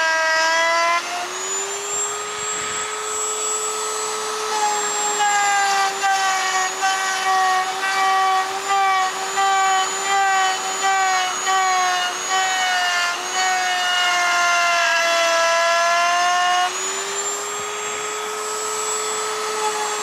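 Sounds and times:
router whining cutting wood: 0.0s - 20.0s.

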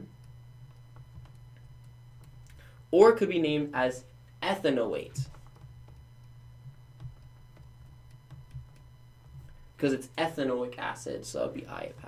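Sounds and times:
steady low hum: 0.0s - 12.0s
stylus tapping on tablet: 0.2s - 2.6s, 5.3s - 9.7s.

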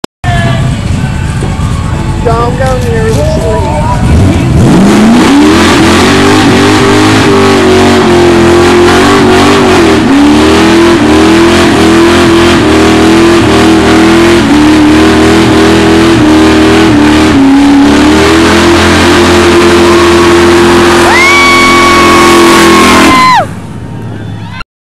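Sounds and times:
car engine revving: 0.3s - 23.5s.

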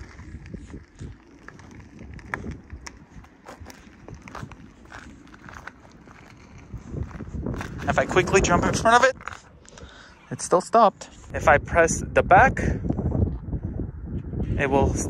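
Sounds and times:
footsteps on pavement: 0.0s - 9.5s
tyres crunching on gritty asphalt: 0.0s - 9.6s.

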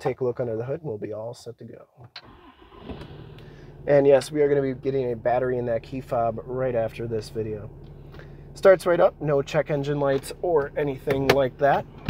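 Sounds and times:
diesel engine cranking and idling: 2.2s - 12.0s.

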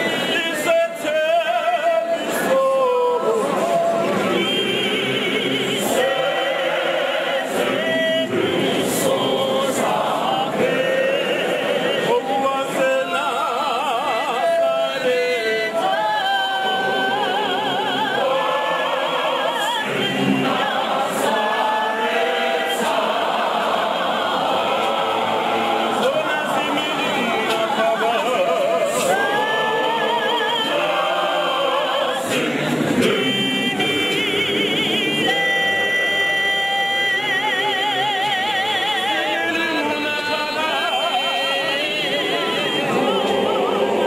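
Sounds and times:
choir singing a hymn: 0.0s - 44.0s.

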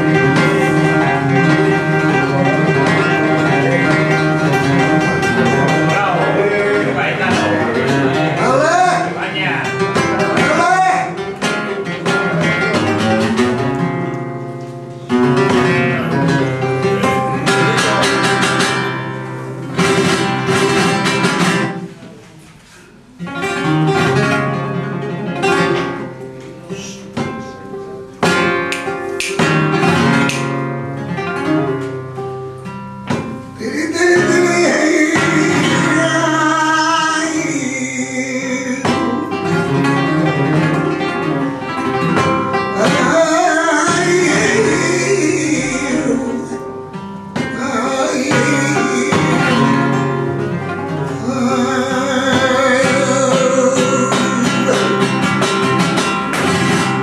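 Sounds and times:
flamenco guitar playing: 0.0s - 57.0s.

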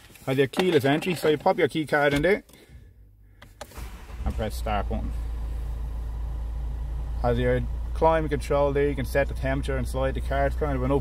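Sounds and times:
diesel engine idling: 3.8s - 11.0s.

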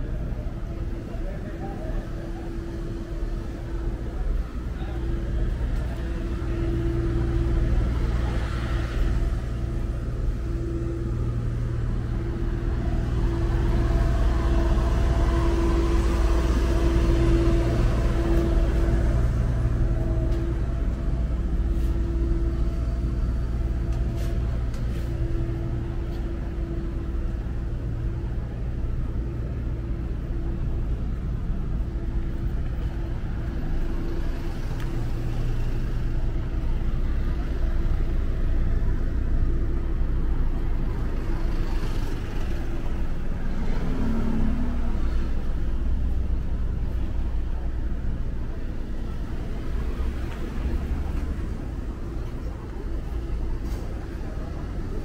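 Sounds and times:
city traffic engine hum: 0.0s - 55.0s
vehicles passing close: 0.0s - 55.0s.

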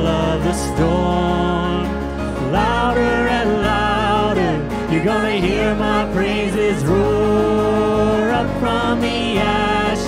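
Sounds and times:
acoustic and electric guitars: 0.0s - 10.0s
bass guitar: 0.0s - 10.0s
woman singing: 2.4s - 10.0s.

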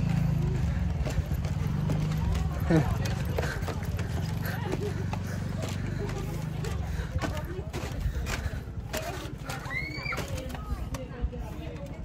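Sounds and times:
footsteps on wooden floor: 0.6s - 10.7s.

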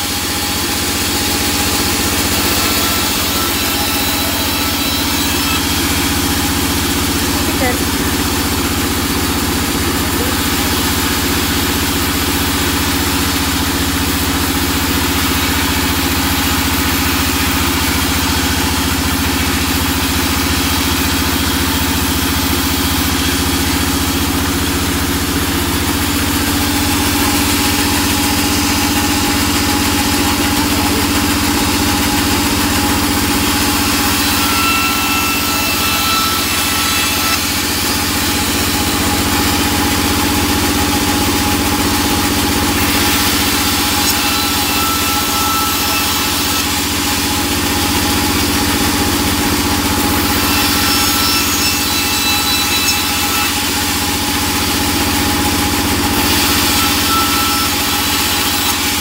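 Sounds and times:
band saw running: 0.0s - 59.0s.

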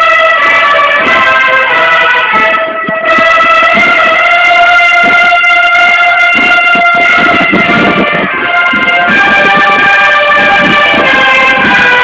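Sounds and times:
band holding long note: 0.0s - 12.0s
low thumps: 0.4s - 12.0s.

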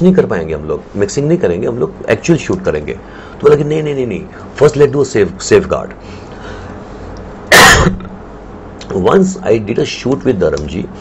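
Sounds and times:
man coughing: 7.5s - 8.2s.

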